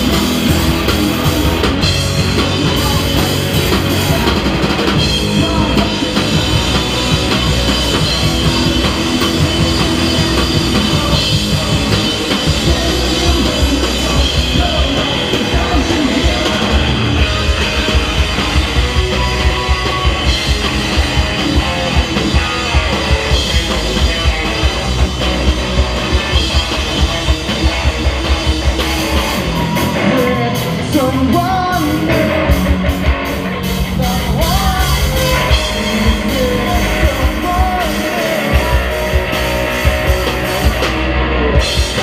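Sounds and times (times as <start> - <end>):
live rock band playing: 0.0 - 42.0.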